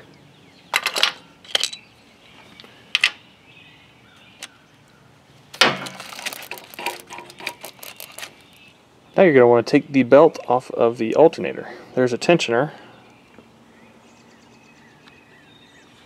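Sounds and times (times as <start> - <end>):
hand tools clinking on metal: 0.8 - 1.9
tools clattering: 0.8 - 1.9, 5.6 - 8.3.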